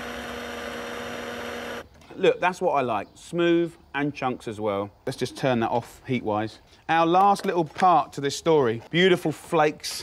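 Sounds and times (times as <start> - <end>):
stick blender motor running: 0.0 - 1.8.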